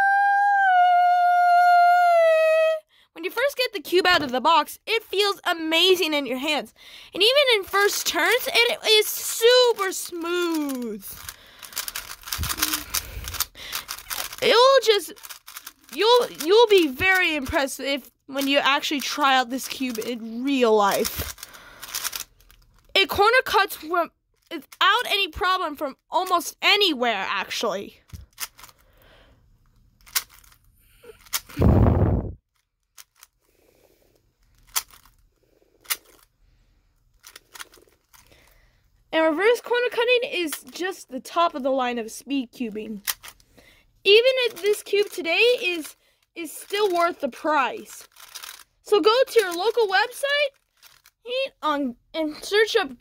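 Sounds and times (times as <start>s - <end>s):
speed cube clicking: 7.6s - 22.6s, 28.1s - 28.8s, 30.0s - 30.6s, 31.2s - 31.6s, 33.0s - 33.3s, 34.5s - 35.2s, 35.8s - 36.2s, 37.2s - 38.4s, 43.0s - 43.4s, 44.1s - 45.9s, 46.6s - 47.2s, 47.8s - 51.1s.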